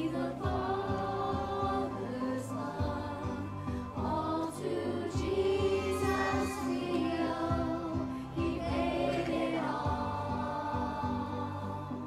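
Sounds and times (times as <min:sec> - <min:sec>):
children's choir singing: 0:00.0 - 0:12.0
instrumental accompaniment with bass: 0:00.0 - 0:12.0.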